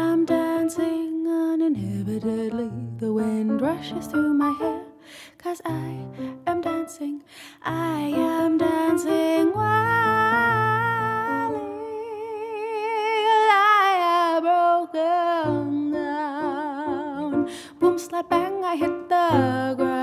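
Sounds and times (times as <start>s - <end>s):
woman singing with vibrato: 0.0s - 20.0s.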